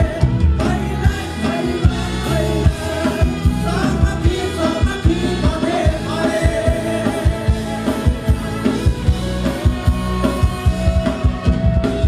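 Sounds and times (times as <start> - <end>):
man singing into microphone: 0.0 - 8.1
electric guitar: 0.0 - 12.0
live band playing dance song: 0.0 - 12.0.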